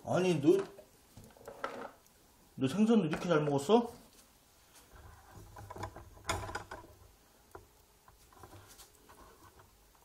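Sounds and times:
rustling: 0:03.0 - 0:10.0.

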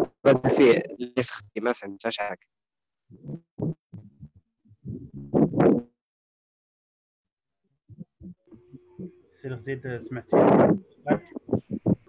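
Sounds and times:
garbled speech over internet call: 0:00.2 - 0:02.4, 0:09.5 - 0:11.7.

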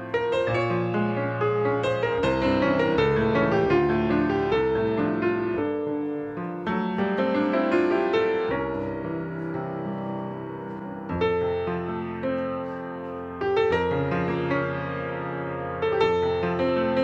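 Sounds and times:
solo grand piano: 0:00.0 - 0:17.0.

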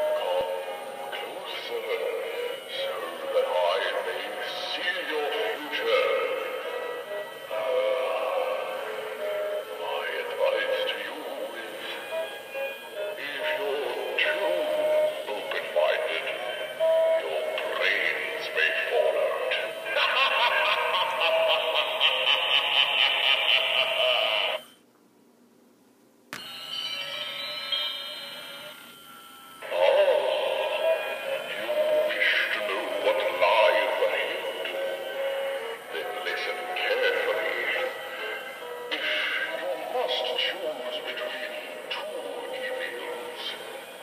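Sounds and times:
electronically altered voice: 0:00.0 - 0:24.7, 0:29.6 - 0:44.0
music: 0:00.0 - 0:24.8, 0:26.4 - 0:44.0.

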